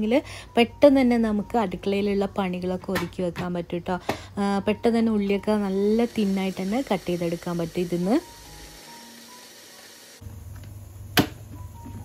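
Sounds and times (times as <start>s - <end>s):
food processor humming: 5.6s - 11.3s
room hiss: 5.8s - 11.9s.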